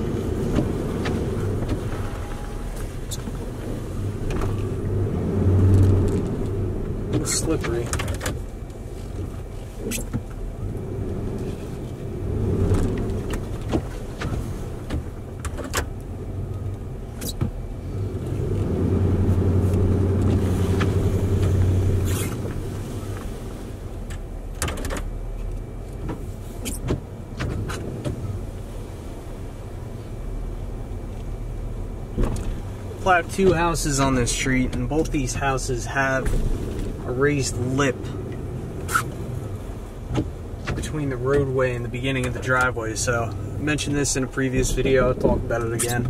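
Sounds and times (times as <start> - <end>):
truck engine under load: 0.0 - 46.0.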